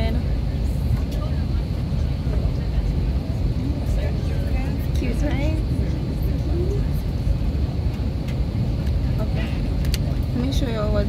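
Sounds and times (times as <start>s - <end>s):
cabin ventilation drone: 0.0s - 11.0s
faint voices: 0.0s - 11.0s.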